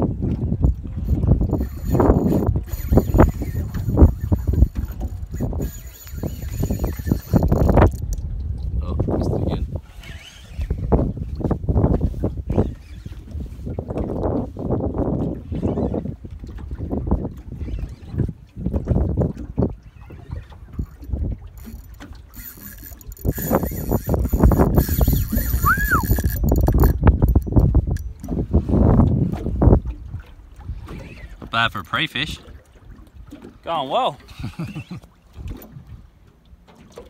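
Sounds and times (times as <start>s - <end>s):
wind buffeting microphone: 0.0s - 31.7s
water slapping boat hull: 0.0s - 37.0s.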